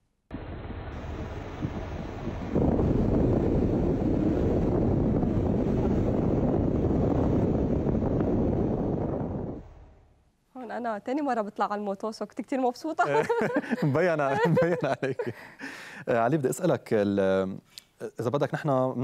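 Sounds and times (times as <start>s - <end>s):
wind rushing over microphone: 0.3s - 10.1s.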